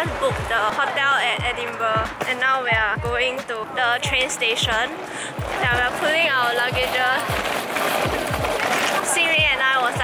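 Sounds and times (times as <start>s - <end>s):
background music with steady beat: 0.0s - 8.7s
suitcase wheels rolling on pavement: 0.0s - 10.0s.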